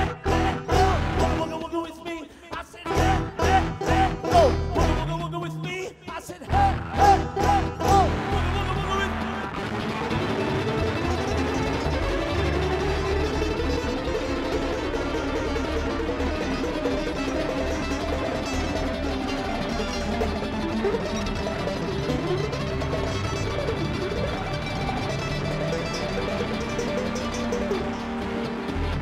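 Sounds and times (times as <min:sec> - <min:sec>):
bluegrass string band playing: 0:00.0 - 0:01.9, 0:02.9 - 0:05.7, 0:06.5 - 0:29.0
mandolin picking quick runs: 0:00.0 - 0:29.0.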